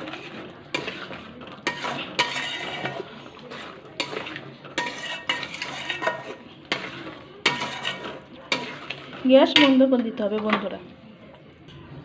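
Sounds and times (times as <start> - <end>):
spoon scraping curry: 0.0 - 9.8
spoon clinking against pan: 0.7 - 9.8.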